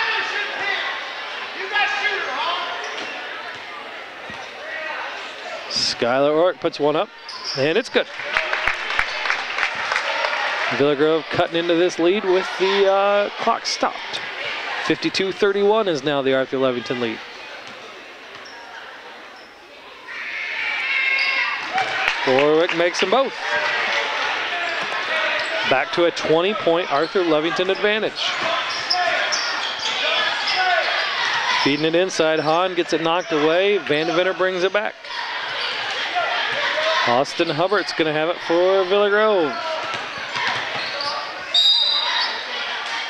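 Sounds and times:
crowd murmur in gymnasium: 0.0s - 43.0s.

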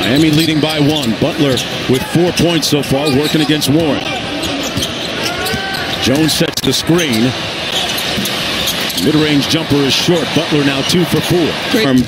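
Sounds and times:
arena background noise: 0.0s - 12.0s.

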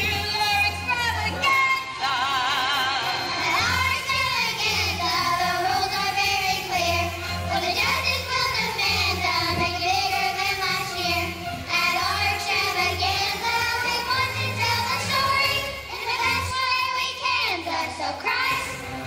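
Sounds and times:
girls singing into microphones: 0.8s - 18.8s.

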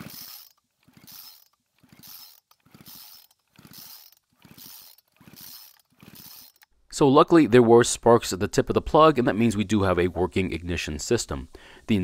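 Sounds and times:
recoil starter pulls spinning engine: 0.0s - 6.7s.

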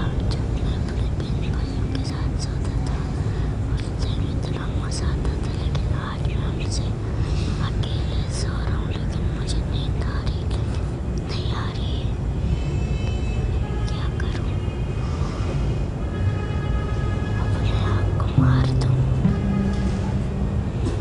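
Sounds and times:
low rumble: 18.4s - 21.0s.

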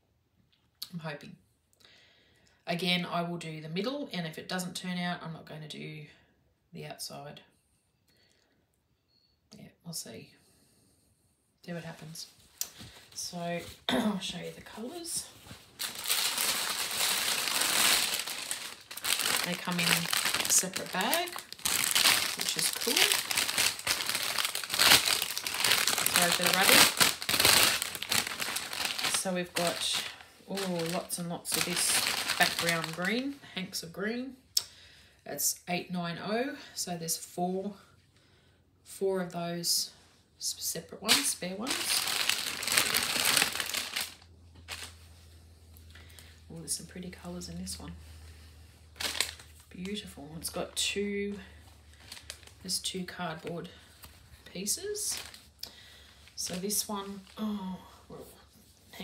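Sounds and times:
plastic bag crinkling: 12.6s - 33.5s, 41.1s - 45.2s, 48.9s - 57.5s.

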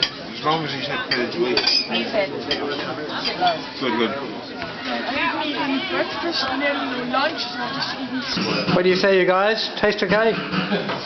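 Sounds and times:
cutlery clinking against plates: 0.0s - 3.6s.

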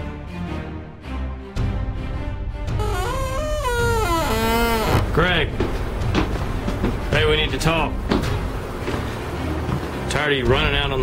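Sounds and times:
door creaking open: 2.8s - 5.3s.

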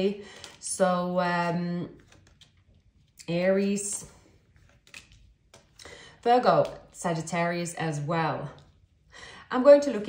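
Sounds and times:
soft rustle of cards: 1.9s - 3.2s, 3.8s - 7.2s
cards tapping and sliding: 4.5s - 5.8s.

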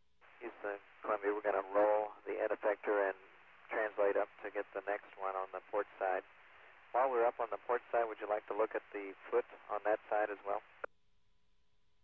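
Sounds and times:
man speaking over radio: 0.4s - 6.2s, 7.0s - 10.9s.

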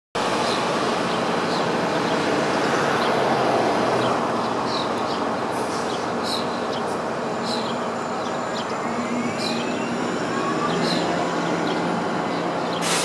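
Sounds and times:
city street traffic: 0.2s - 13.0s
bird chirps: 5.8s - 12.9s.

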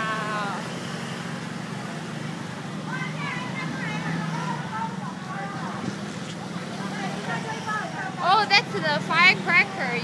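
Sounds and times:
motor scooter engines humming: 0.0s - 10.0s
murmur of voices: 0.0s - 10.0s.

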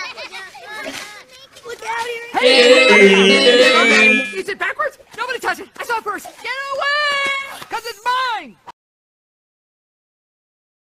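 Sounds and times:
high-pitched cartoon voice crying: 2.4s - 4.4s.

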